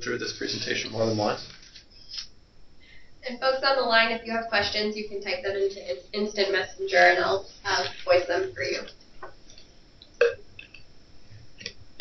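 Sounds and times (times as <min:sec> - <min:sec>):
person throat noise: 0:10.2 - 0:10.8.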